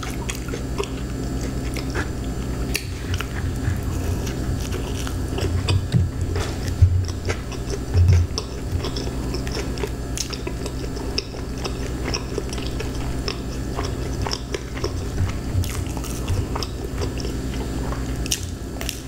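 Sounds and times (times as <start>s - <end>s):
close chewing: 0.0s - 19.0s
steady low hum: 0.0s - 19.0s.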